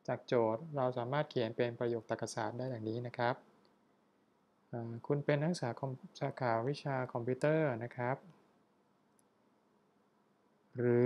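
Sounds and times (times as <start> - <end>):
man speaking: 0.0 - 3.4, 4.8 - 8.3, 10.8 - 11.0.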